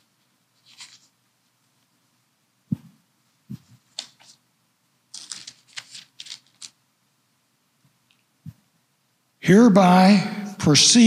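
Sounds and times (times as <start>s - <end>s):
paper pages turning: 0.6s - 1.2s, 3.6s - 4.4s, 5.1s - 6.8s.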